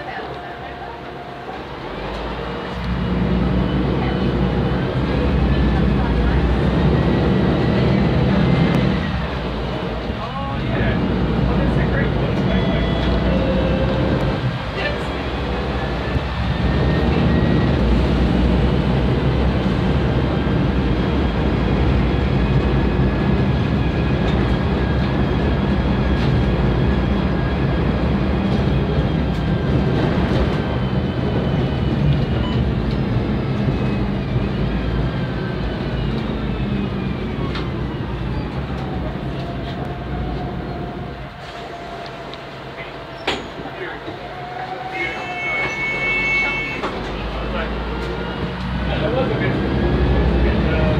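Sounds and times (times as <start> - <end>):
bus diesel engine rumbling: 0.0 - 50.9.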